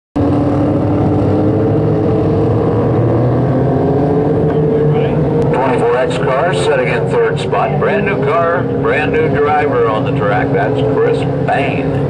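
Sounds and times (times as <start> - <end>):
racing car engines droning: 0.2 - 12.0
announcer over loudspeaker: 4.6 - 12.0.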